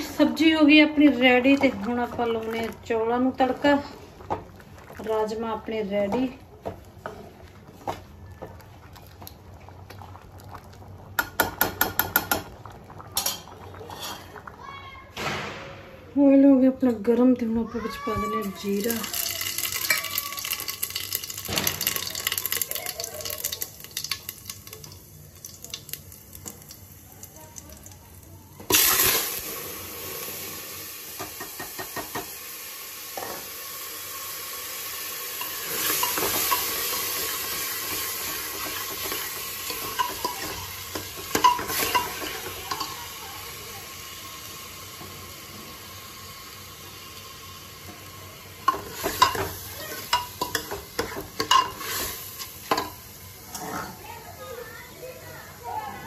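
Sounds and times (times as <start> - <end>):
rice sizzling in hot oil: 13.1 - 14.7, 18.3 - 55.9
metal spoon scraping a pot: 13.2 - 14.3.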